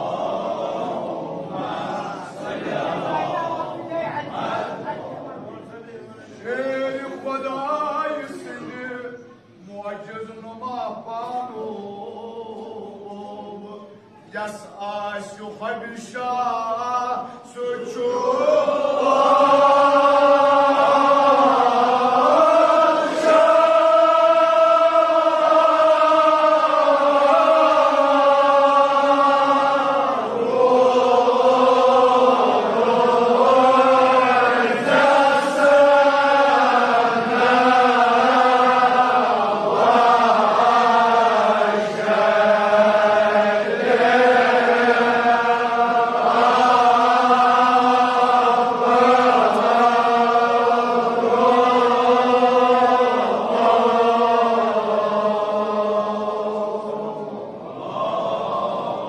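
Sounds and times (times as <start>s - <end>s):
men chanting in unison: 0.0s - 5.2s, 6.1s - 59.0s.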